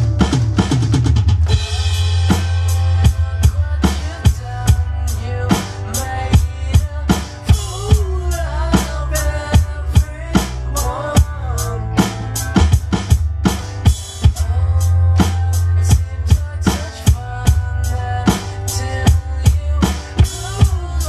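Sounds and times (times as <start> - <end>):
band backing track: 0.0 - 21.0
electronic drum kit rock beat: 0.0 - 21.0.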